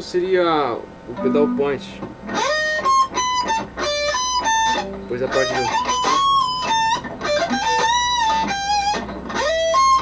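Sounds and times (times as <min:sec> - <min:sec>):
electric guitar lead lick: 0:01.1 - 0:10.0.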